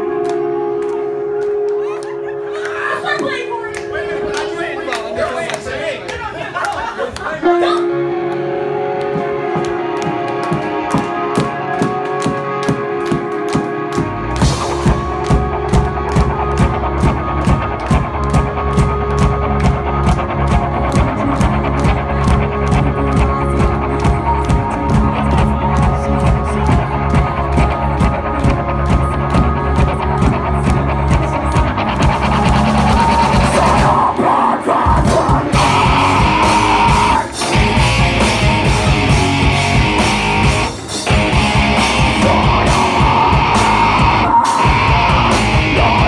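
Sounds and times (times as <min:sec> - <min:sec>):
drum kit beating evenly: 0:07.2 - 0:46.0
heavy metal band playing: 0:07.2 - 0:46.0.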